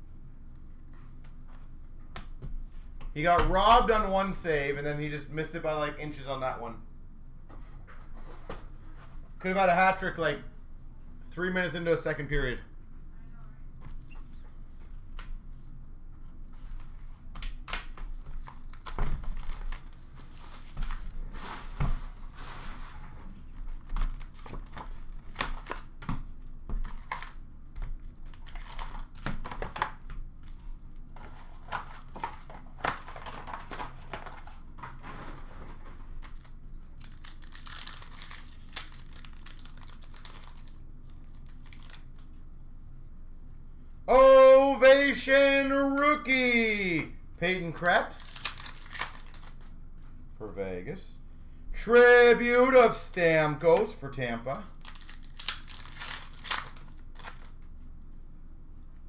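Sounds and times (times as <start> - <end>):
foil wrappers crinkling and tearing: 16.7 - 21.2, 28.0 - 29.8, 36.0 - 42.4, 47.8 - 49.7, 54.6 - 57.7.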